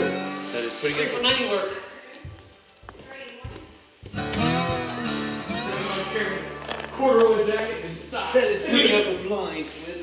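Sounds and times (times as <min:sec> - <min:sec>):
acoustic guitar music: 0:00.0 - 0:02.7, 0:03.8 - 0:09.3.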